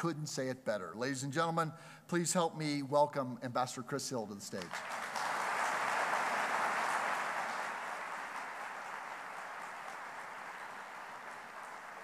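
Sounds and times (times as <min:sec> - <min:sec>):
audience applauding: 0:04.7 - 0:12.0.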